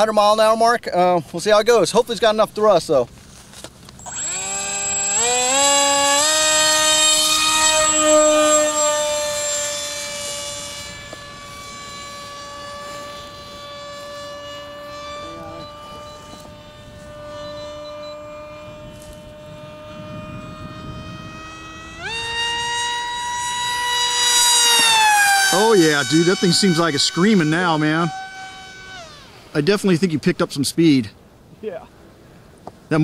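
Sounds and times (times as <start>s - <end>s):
electric model jet motor whine: 3.2s - 30.8s.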